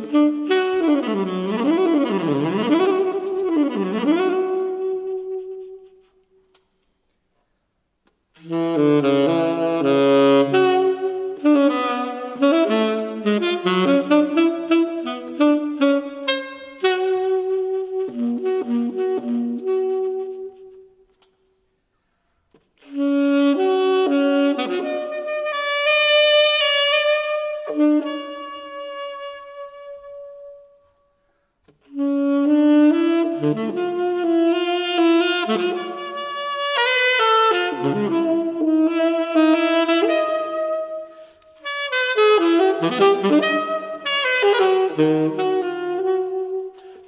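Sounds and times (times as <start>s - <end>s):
saxophone playing jazz runs: 0.0s - 6.6s, 8.4s - 21.4s, 22.8s - 31.0s, 31.8s - 47.0s.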